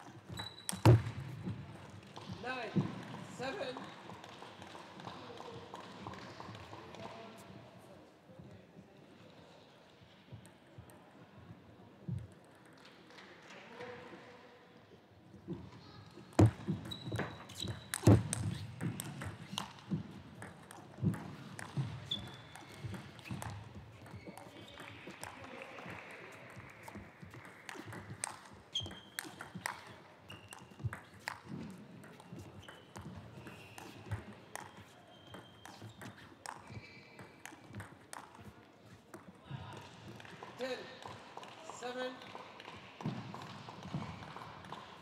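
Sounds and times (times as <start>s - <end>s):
shoes squeaking on floor: 0.1s - 1.4s, 16.4s - 19.7s, 21.3s - 24.9s, 28.7s - 37.9s.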